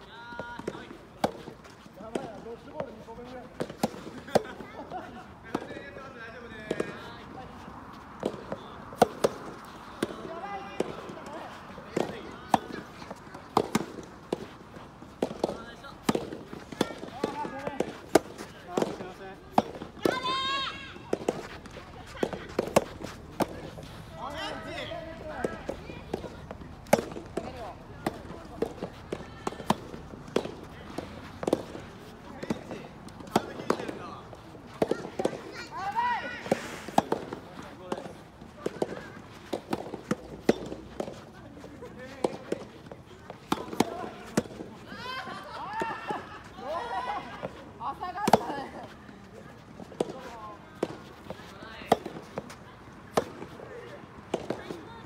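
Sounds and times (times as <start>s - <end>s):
balls bouncing on court: 0.1s - 6.0s, 6.6s - 7.2s, 8.1s - 44.8s, 49.8s - 55.0s
players calling out: 3.8s - 40.5s, 41.1s - 49.4s.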